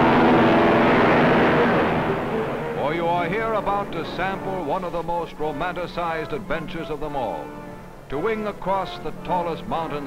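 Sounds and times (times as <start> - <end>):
radial piston engines droning: 0.0 - 10.0
man narrating: 2.8 - 7.5, 8.1 - 10.0.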